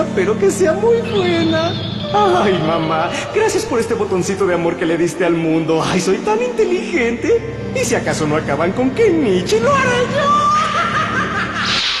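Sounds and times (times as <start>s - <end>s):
cartoon villain laugh: 10.6s - 11.8s
burst of hiss: 11.6s - 12.0s.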